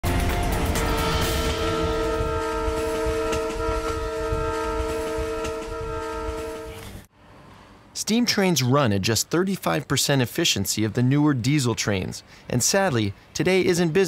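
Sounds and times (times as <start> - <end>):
rumble of moving train: 0.1 - 7.4
train horn: 0.4 - 7.1.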